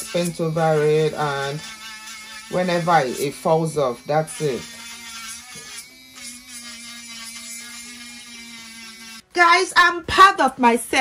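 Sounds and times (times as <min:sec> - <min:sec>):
electric nail drill whining: 0:00.0 - 0:09.7.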